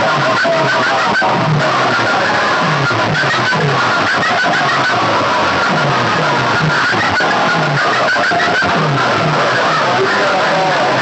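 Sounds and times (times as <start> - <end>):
distorted music from loudspeakers: 0.0 - 11.0
falling bass note beat: 0.0 - 11.0.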